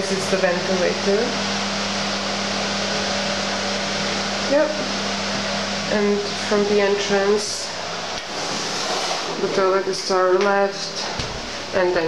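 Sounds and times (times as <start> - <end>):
extractor fan rushing: 0.0 - 9.8.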